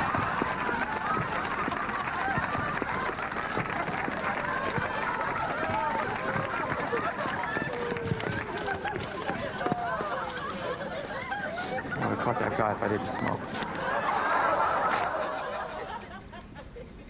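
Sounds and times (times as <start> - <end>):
running footsteps on pavement: 0.0 - 15.3
overlapping voices: 0.0 - 16.0.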